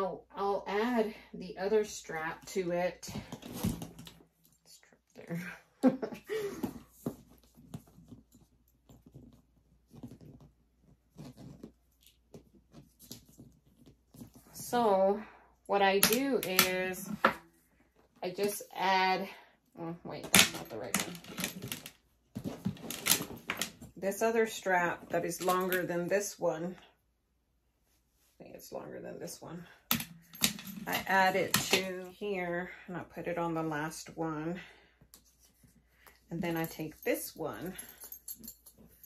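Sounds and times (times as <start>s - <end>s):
leather straps rustling: 6.6s - 15.1s, 20.6s - 24.2s, 35.0s - 39.0s.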